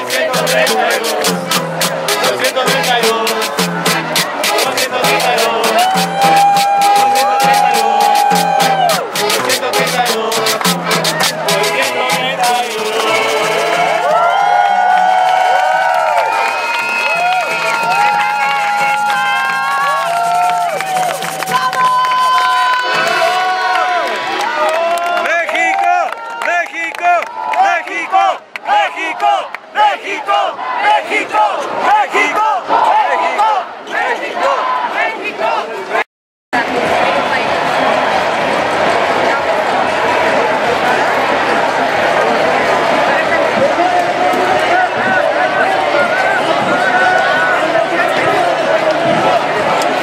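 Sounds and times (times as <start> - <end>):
accordion chords: 0.0 - 14.1
bass notes: 0.0 - 14.1
crowd chanting and cheering: 0.0 - 50.0.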